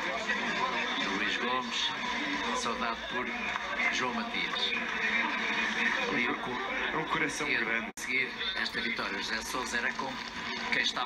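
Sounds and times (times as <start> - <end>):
voices talking through tv speaker: 0.0 - 11.0.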